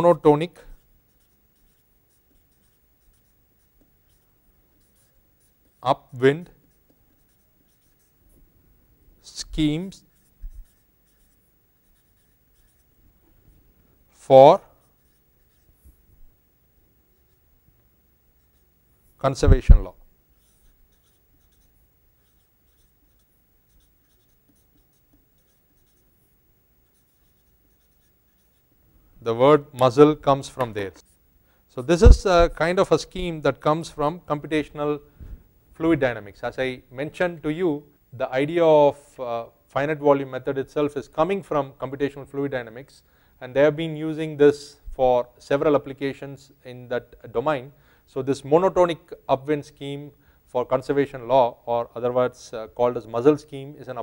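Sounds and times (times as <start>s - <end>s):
marker scratching on paper: 0.0s - 5.8s, 6.5s - 8.4s, 9.3s - 13.0s, 14.2s - 16.0s, 17.1s - 17.5s, 18.4s - 28.7s, 32.0s - 32.6s.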